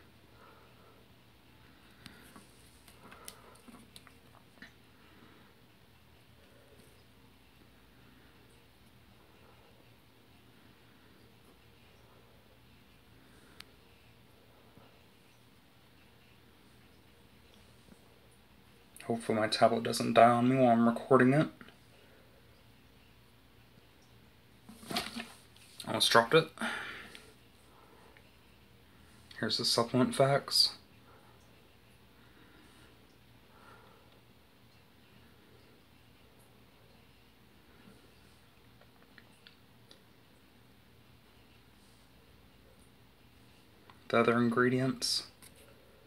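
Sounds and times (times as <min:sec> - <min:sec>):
handling noise: 0:24.7 - 0:25.5.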